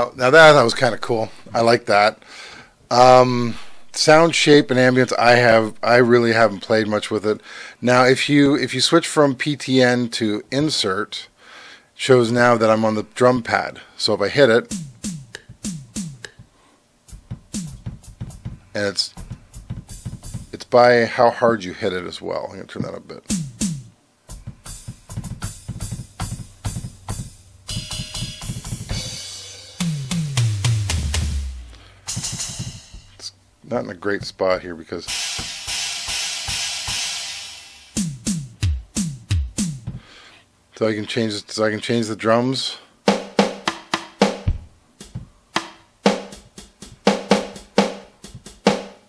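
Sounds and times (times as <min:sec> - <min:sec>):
drum machine hits: 0:14.6 - 0:16.5, 0:17.1 - 0:20.6, 0:23.2 - 0:33.3, 0:35.1 - 0:40.1, 0:43.1 - 0:49.0
deep kick drum hit: 0:17.2 - 0:18.6, 0:19.2 - 0:20.6, 0:23.3 - 0:27.4, 0:29.8 - 0:33.1, 0:38.0 - 0:40.0, 0:44.4 - 0:45.3
ringing cymbal: 0:27.7 - 0:29.8, 0:35.1 - 0:38.0.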